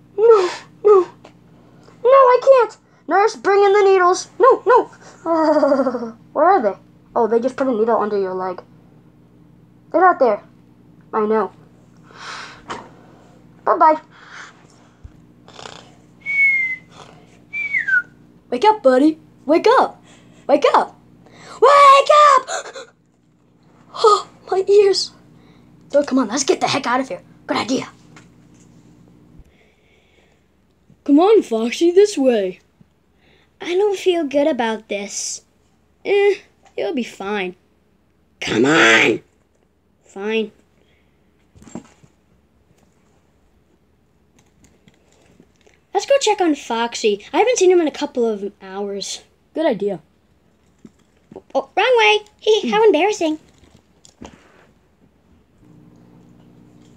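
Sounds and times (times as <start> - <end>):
person whistling high note: 16.2 - 18.1.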